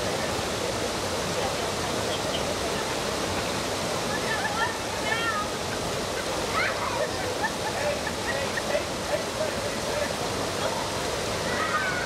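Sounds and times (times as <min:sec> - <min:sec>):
river water pouring over rocks: 0:00.0 - 0:12.0.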